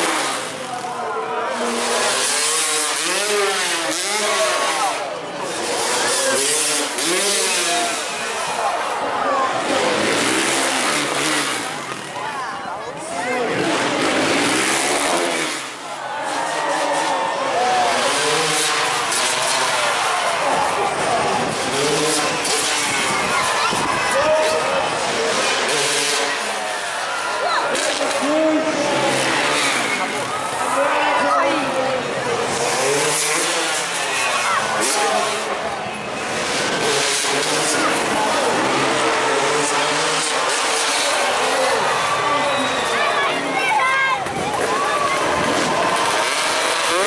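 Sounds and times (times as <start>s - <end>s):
crowd noise and voices: 0.0s - 47.0s
dirt bike engine revving: 0.0s - 47.0s
loud steady background noise: 0.0s - 47.0s.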